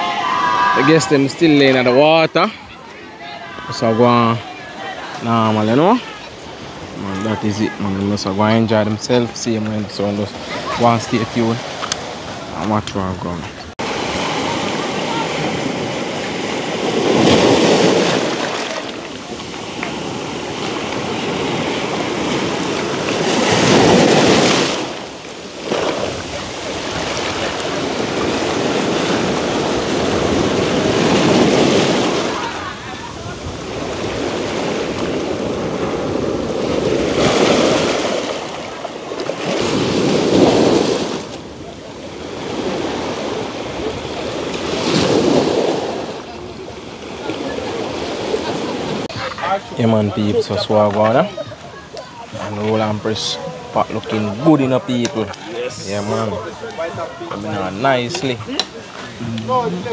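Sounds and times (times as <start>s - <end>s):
sea waves breaking on stones: 13.8s - 49.1s.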